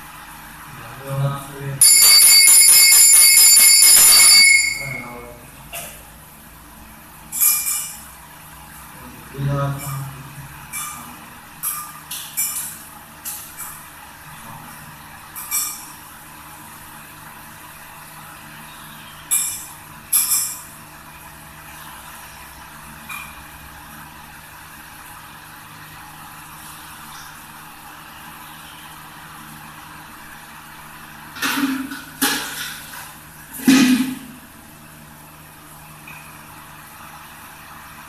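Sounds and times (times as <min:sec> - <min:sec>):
brass vessels clinking on stone: 0:01.8 - 0:05.0.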